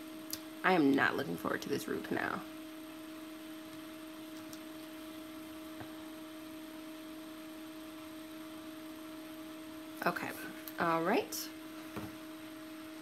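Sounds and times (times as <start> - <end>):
electrical hum: 0.0 - 13.0.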